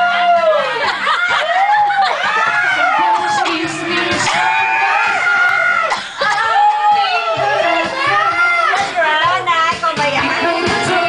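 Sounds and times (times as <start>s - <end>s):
group laughing: 0.0s - 3.2s.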